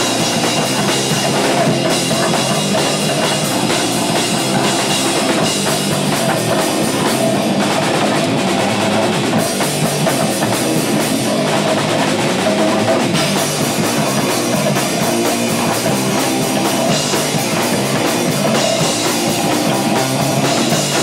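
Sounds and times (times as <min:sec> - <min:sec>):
distorted electric guitar: 0:00.0 - 0:21.0
fast loud drum kit: 0:00.0 - 0:21.0.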